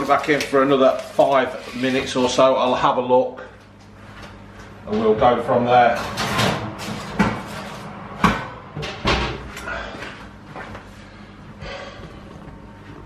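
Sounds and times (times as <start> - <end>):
kitchen knocks and clatters: 6.0 - 9.5.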